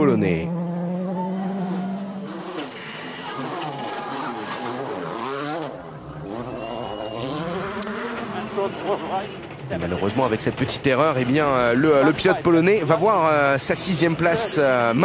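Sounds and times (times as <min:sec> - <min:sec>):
car engine revving hard: 0:00.4 - 0:09.6.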